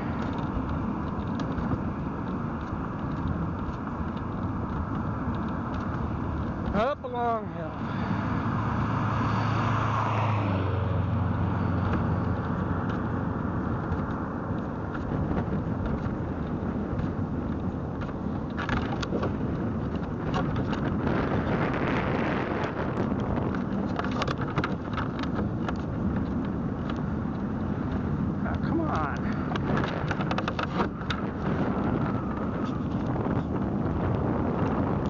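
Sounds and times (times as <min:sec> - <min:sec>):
low engine hum: 0:00.0 - 0:35.0
road and wind noise: 0:00.0 - 0:35.0
car passing with whoosh: 0:07.4 - 0:17.2.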